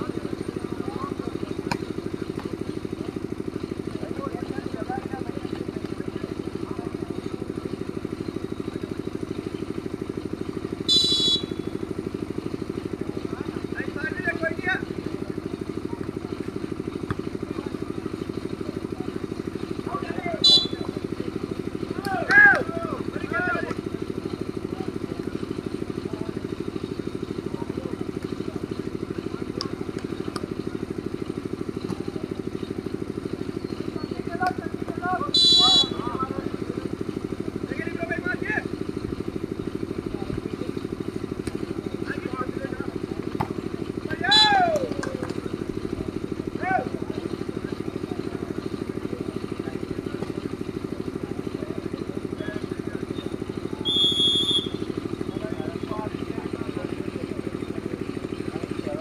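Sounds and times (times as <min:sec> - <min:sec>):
players shouting: 0:00.0 - 0:40.0, 0:40.8 - 0:51.2, 0:51.8 - 0:59.0
referee's whistle blasts: 0:10.8 - 0:11.8, 0:20.4 - 0:21.0, 0:35.2 - 0:36.1, 0:44.2 - 0:44.8, 0:53.2 - 0:54.9.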